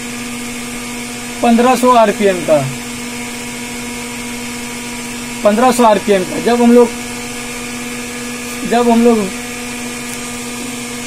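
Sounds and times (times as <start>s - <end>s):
electrical equipment humming: 0.0s - 11.0s.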